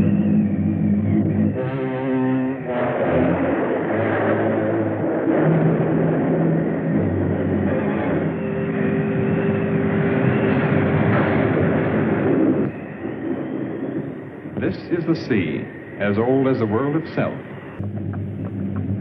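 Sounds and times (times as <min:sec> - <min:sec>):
continuous rumbling roar: 0:00.0 - 0:19.0
low droning tones: 0:00.0 - 0:19.0.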